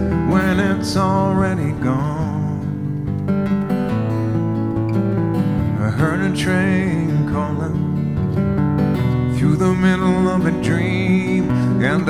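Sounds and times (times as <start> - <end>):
person singing: 0.0 - 3.2, 5.6 - 8.4, 9.2 - 12.0
acoustic guitar strumming: 0.0 - 12.0.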